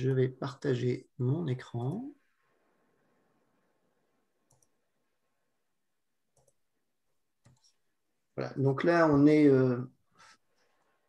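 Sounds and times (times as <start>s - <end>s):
computer mouse clicks: 4.4s - 4.8s, 6.3s - 6.6s, 7.4s - 7.8s.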